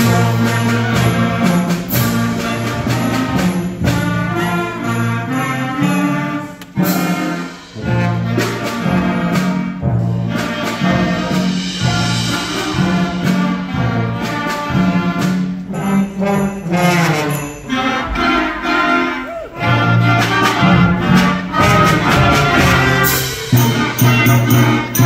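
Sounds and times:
concert band playing: 0.0 - 25.0
percussion strikes: 0.0 - 25.0.

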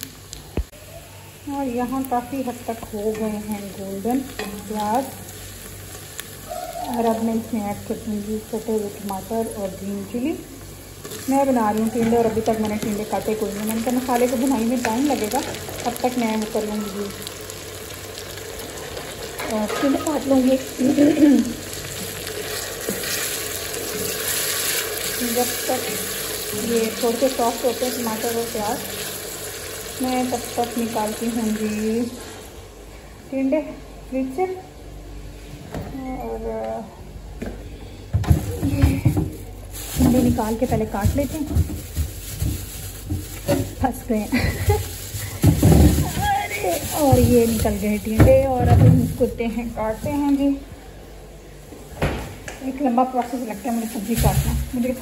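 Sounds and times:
food sizzling in hot oil: 1.3 - 32.5, 38.9 - 50.4
plastic bag crinkling: 11.1 - 22.8, 38.3 - 50.6, 53.3 - 55.0
woman laughing: 20.8 - 21.6, 44.3 - 45.4.

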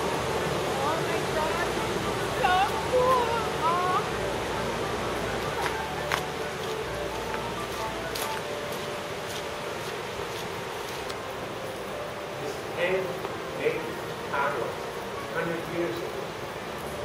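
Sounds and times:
fast-flowing water rushing: 0.0 - 17.0
footsteps on wet gravel: 5.4 - 11.8.

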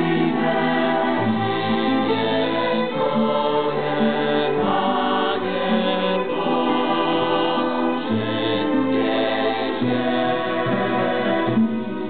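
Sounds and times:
choir singing in harmony: 0.0 - 12.0
violins: 0.0 - 12.0.

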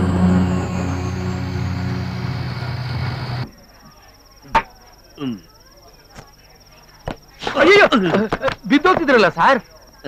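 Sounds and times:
cricket trilling: 0.0 - 10.0.

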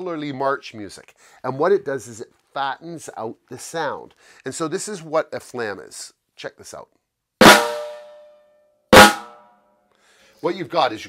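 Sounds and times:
snare drum flams: 7.4 - 8.1, 9.0 - 9.3.

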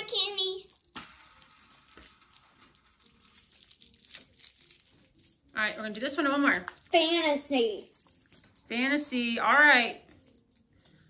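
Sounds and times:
girl speaking: 0.0 - 0.7, 6.9 - 7.9.

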